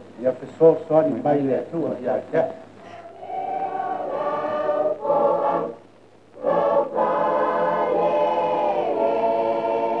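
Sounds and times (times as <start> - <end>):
choir singing held notes: 2.8 - 10.0.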